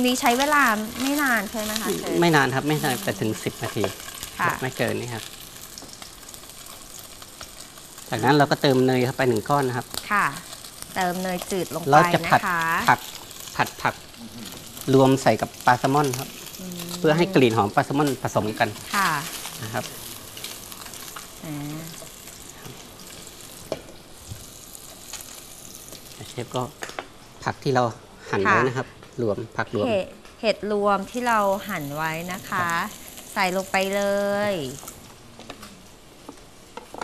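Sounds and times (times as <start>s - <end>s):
fish sizzling in a pan: 0.0s - 37.0s.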